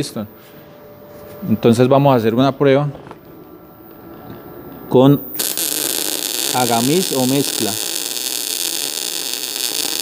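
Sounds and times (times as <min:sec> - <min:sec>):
man talking: 0:01.4 - 0:03.0, 0:04.9 - 0:05.3.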